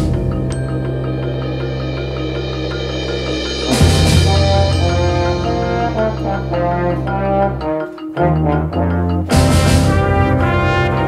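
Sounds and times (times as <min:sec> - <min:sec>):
symphonic band with trombones: 0:03.0 - 0:11.0.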